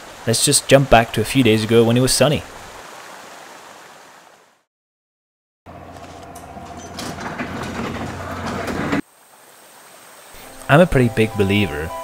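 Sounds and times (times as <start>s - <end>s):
door rolling along tracks: 5.7s - 9.0s
garage door opener motor hum: 5.7s - 9.0s.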